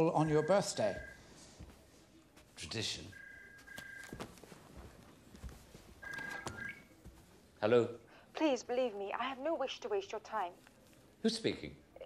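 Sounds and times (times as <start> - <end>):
mobile phone two-tone ring: 6.0 - 6.8.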